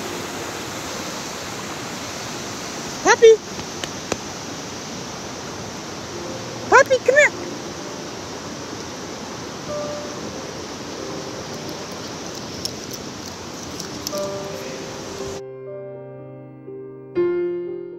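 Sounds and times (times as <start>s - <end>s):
running water rushing: 0.0s - 15.4s
faint musical tones: 6.0s - 12.2s.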